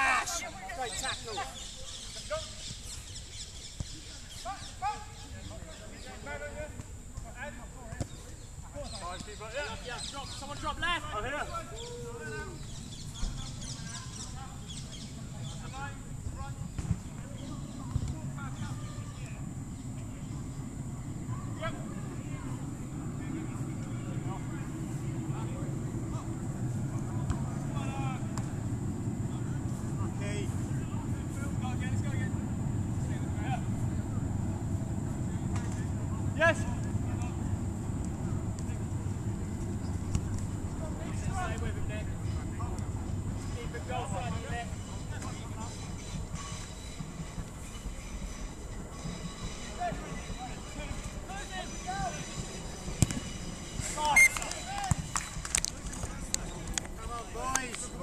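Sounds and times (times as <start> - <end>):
low rumble: 18.3 - 46.8
distant players shouting: 53.2 - 55.1.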